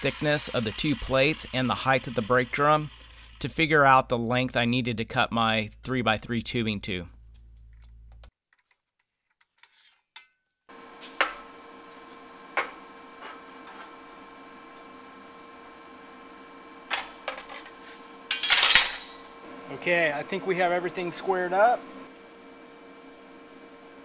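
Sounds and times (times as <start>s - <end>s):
steady shop hum: 0.0s - 8.3s, 10.7s - 24.0s
steel clamps knocking and clinking: 18.3s - 19.2s
metal clatter: 18.3s - 19.3s.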